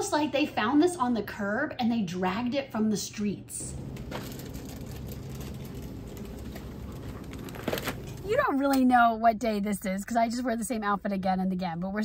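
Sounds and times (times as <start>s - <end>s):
low hum: 3.6s - 8.3s
shopping cart rolling: 3.7s - 8.4s.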